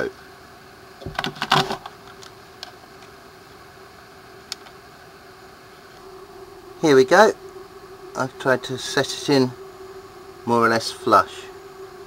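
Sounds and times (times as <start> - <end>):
steady low hum: 0.0 - 12.0
faint ticks: 4.4 - 4.8.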